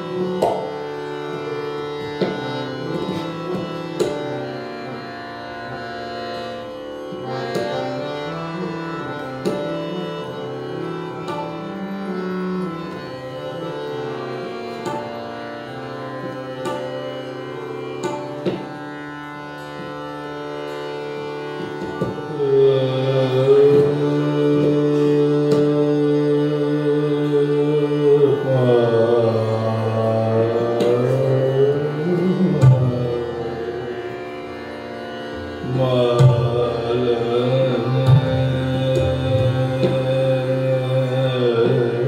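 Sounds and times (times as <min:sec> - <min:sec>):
harmonium: 0:00.0 - 0:42.0
tanpura drone: 0:00.0 - 0:42.0
man singing: 0:22.3 - 0:34.1, 0:35.6 - 0:42.0.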